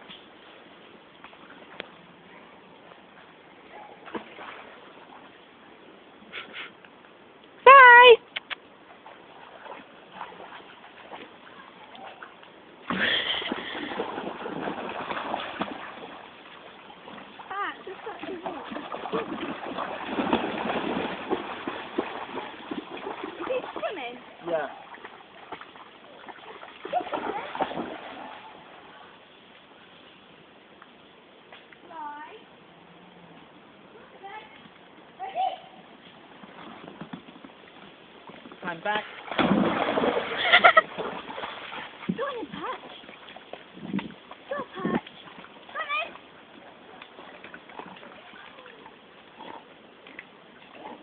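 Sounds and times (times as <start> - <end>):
dog splashing through water: 8.8 - 29.0, 38.4 - 51.0.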